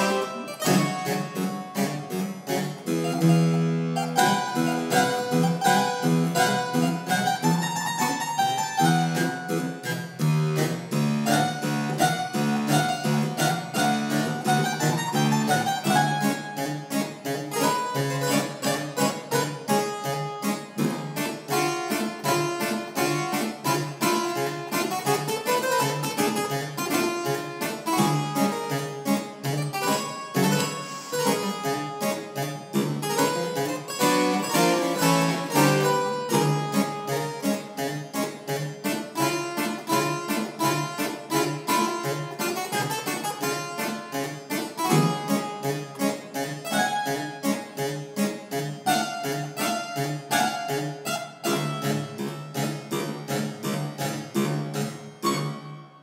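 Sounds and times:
fast harpsichord dance: 0.0s - 55.8s.

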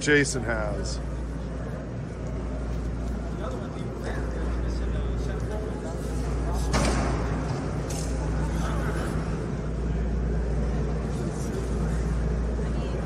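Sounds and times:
distant indistinct voices: 0.0s - 13.0s
steady low rumble: 0.0s - 13.0s.

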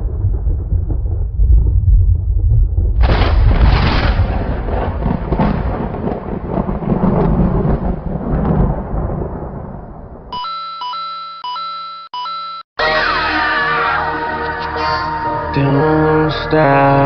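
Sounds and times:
deep thunder-like rumble: 0.0s - 10.3s.

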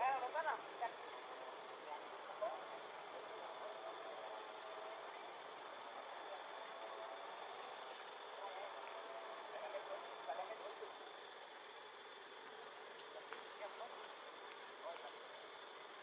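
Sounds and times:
insects droning: 0.0s - 16.0s.

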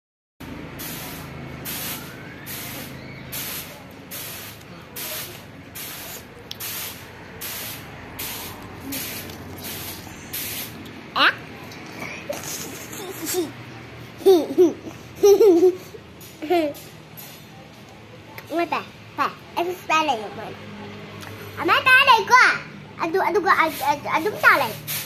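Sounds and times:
short bursts of hiss: 0.8s - 10.8s, 23.7s - 25.0s.

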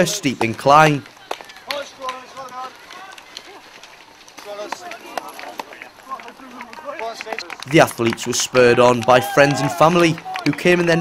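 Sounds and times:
runners' footsteps on grass: 0.0s - 11.0s.

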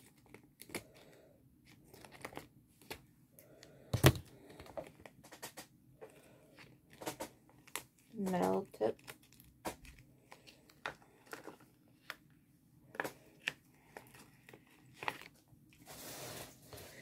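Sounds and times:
plastic bag crinkling: 13.1s - 17.0s.

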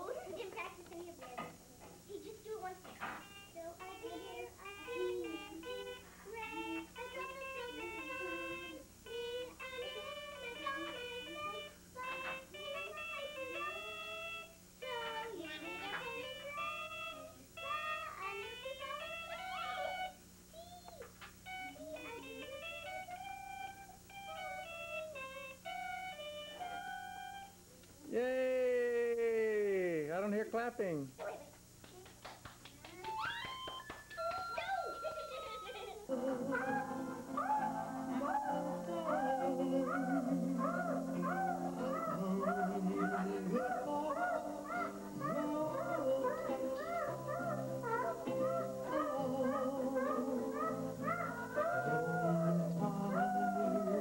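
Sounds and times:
child singing: 2.2s - 21.0s, 21.7s - 23.4s, 34.6s - 54.0s
electronic toy beeping tune: 3.2s - 20.2s, 21.5s - 27.6s, 33.2s - 35.9s.

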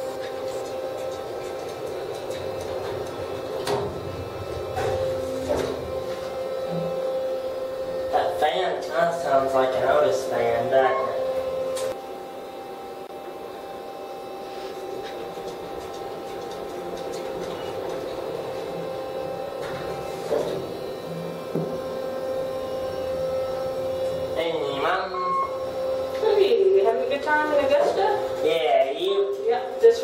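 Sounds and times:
ventilation fan humming: 0.0s - 30.0s.

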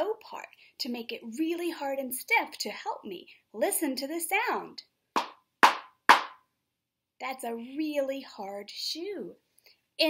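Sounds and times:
hard shoe knocking on wooden floor: 5.2s - 6.4s.

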